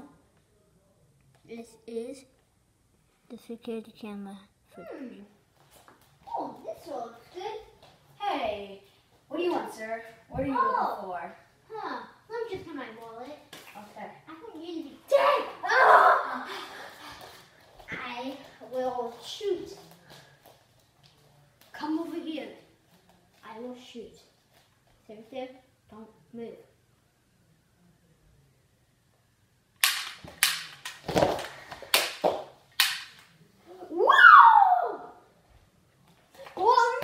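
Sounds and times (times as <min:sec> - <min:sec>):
toy pistol gunshot cracks: 0:29.8 - 0:31.0, 0:32.8 - 0:33.2.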